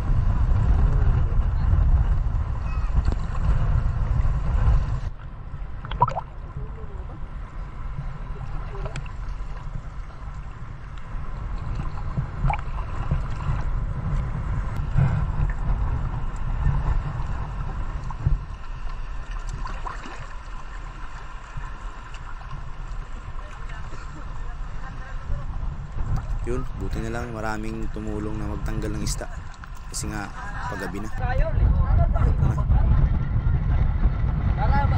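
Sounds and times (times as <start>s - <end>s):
wind on camera: 0.0s - 34.9s
seawater sloshing: 16.7s - 25.2s.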